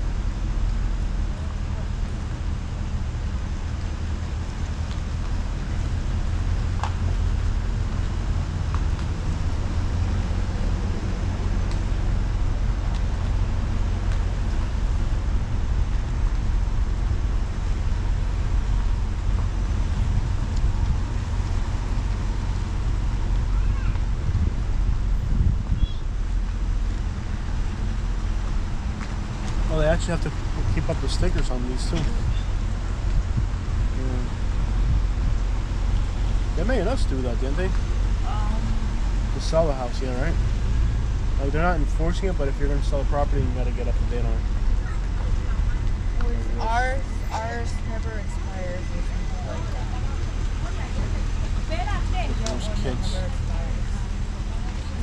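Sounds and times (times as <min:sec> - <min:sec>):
car engine and road noise: 0:00.0 - 0:55.0.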